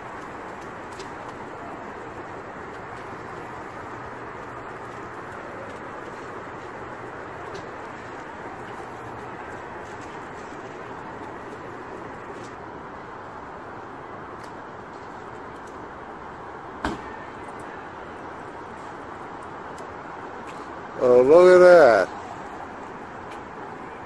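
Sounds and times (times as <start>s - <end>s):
outdoor city background noise: 0.0s - 24.0s.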